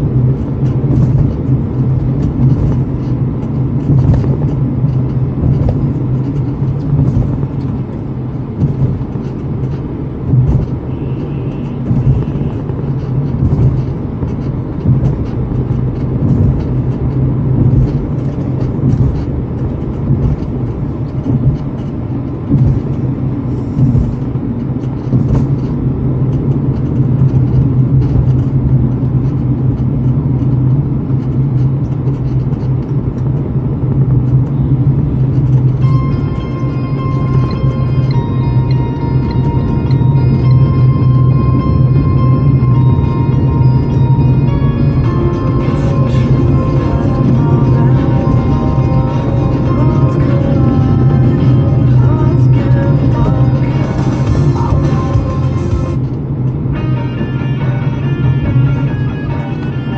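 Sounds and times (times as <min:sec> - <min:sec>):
road knocks and rattles: 0:00.0 - 0:57.6
car cabin road and engine drone: 0:00.0 - 0:59.9.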